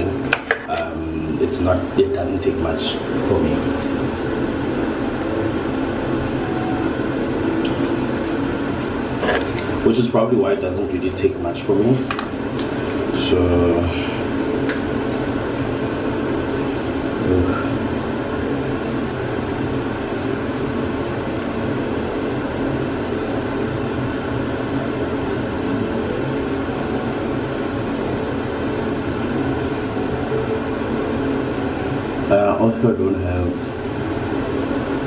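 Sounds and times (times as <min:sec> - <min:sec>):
steady mechanical whir: 0:00.0 - 0:35.0.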